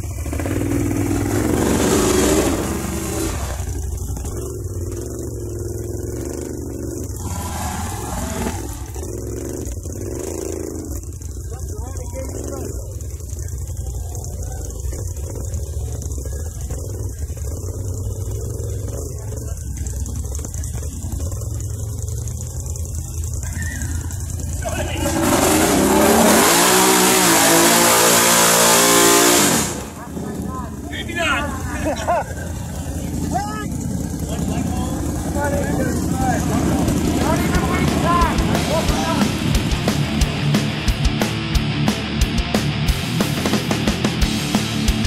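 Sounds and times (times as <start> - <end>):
atv engine revving: 0.0 - 45.0
loud rushing noise: 24.9 - 30.0.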